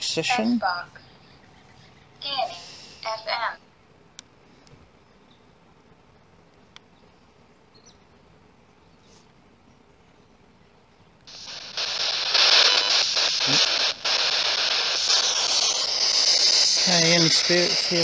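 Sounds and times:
radio static hiss from phone: 0:11.3 - 0:18.0.

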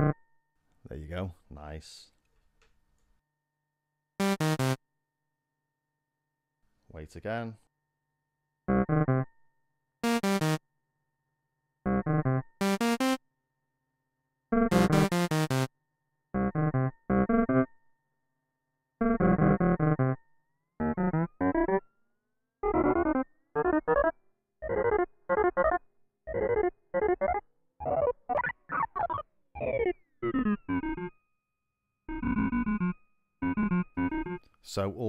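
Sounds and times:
synthesizer with gritty delay repeats: 0:04.2 - 0:04.8, 0:10.0 - 0:10.6, 0:11.9 - 0:13.2, 0:14.6 - 0:15.7, 0:16.4 - 0:17.7, 0:19.0 - 0:20.2, 0:20.8 - 0:21.8, 0:22.6 - 0:31.1, 0:32.1 - 0:34.4.

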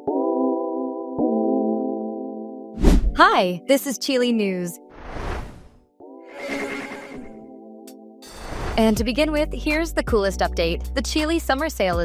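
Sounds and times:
noisy whoosh: 0:05.0 - 0:05.7
steady synthesized tone: 0:06.3 - 0:07.5.

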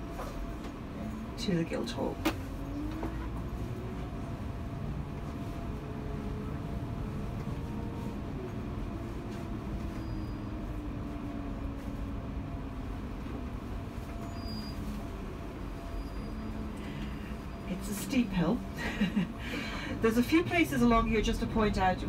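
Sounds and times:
bus engine rumble: 0:00.0 - 0:22.0
faint engine whine: 0:00.0 - 0:22.0.

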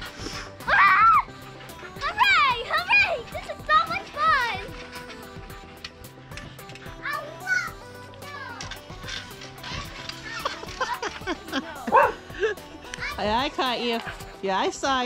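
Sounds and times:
background music with beat: 0:00.0 - 0:15.0
girls squealing and shouting: 0:00.6 - 0:01.3.

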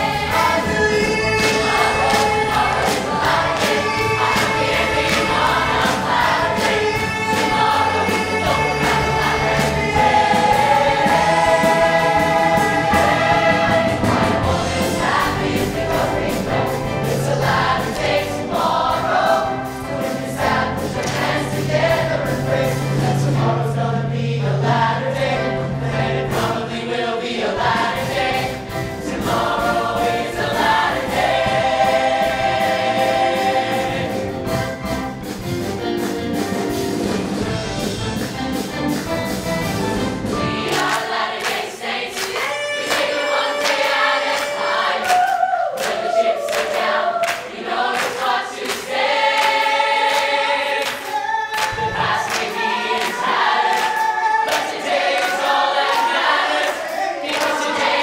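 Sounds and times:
orchestra playing: 0:00.0 - 0:24.0, 0:28.0 - 0:41.2, 0:42.4 - 0:45.0
chorus singing: 0:00.0 - 0:35.0, 0:40.0 - 0:58.0.

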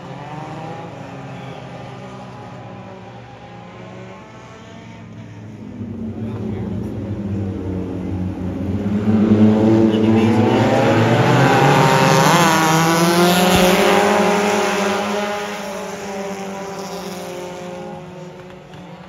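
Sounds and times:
race car engines running hard: 0:00.0 - 0:19.0.

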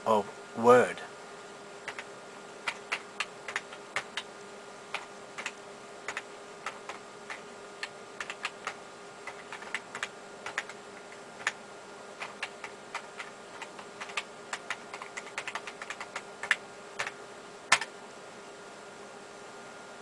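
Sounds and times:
steady background hum: 0:00.0 - 0:20.0
typing on computer keyboard: 0:01.9 - 0:04.3, 0:04.9 - 0:11.6, 0:12.2 - 0:17.9.

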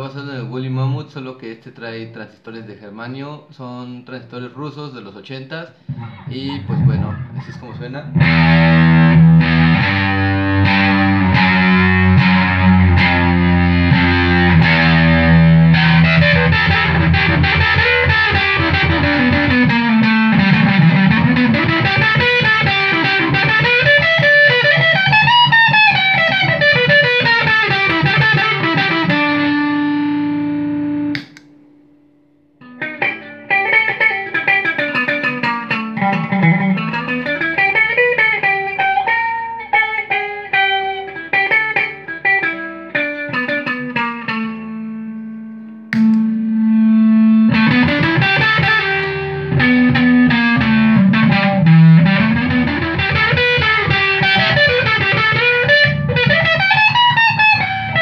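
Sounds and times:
distorted electric guitar: 0:05.8 - 0:58.0.

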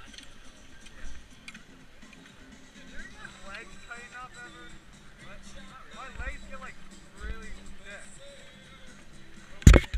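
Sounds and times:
background music: 0:00.0 - 0:09.9
people talking: 0:02.8 - 0:08.2.

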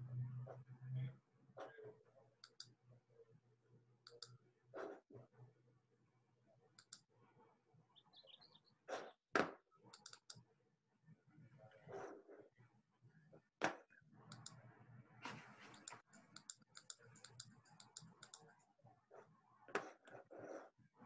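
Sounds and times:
mouse and keyboard clicking: 0:02.4 - 0:02.8, 0:04.0 - 0:04.4, 0:06.8 - 0:07.1, 0:09.9 - 0:10.5, 0:14.3 - 0:14.6, 0:15.3 - 0:18.6.

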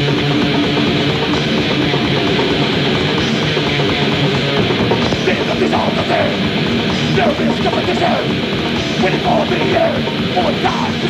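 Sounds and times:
bass guitar: 0:00.0 - 0:11.0
distorted electric guitars: 0:00.0 - 0:11.0
fast dense drumming: 0:00.0 - 0:11.0.

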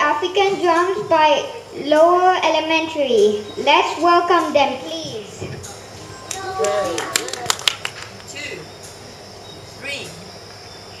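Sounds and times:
child calling: 0:06.1 - 0:07.6.

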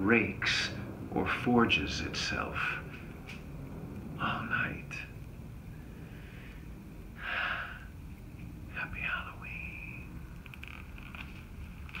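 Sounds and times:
man's breathy whisper: 0:04.2 - 0:05.1, 0:08.7 - 0:10.2
faint clicks: 0:10.3 - 0:12.0.

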